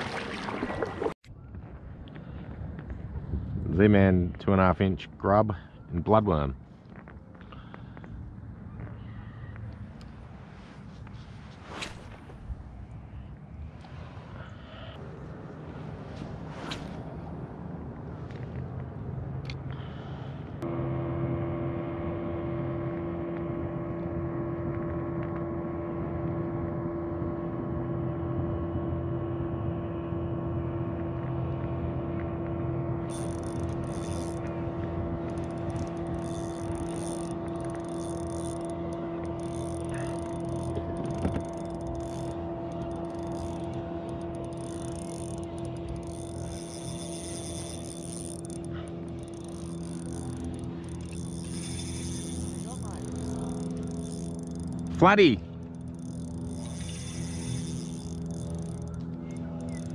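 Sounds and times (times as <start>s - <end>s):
steady mechanical drone: 7.2s - 59.9s.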